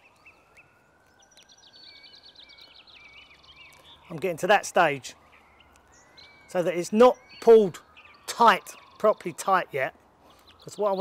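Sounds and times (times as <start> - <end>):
outdoor background noise: 0.0 - 11.0
small birds chirping: 0.0 - 11.0.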